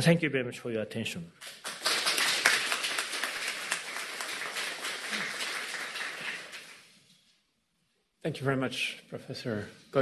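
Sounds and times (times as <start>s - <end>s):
audience applauding: 1.4s - 6.9s.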